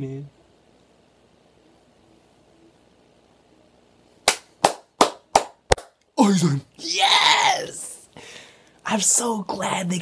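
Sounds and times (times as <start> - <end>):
sharp hand claps: 4.2 - 6.0.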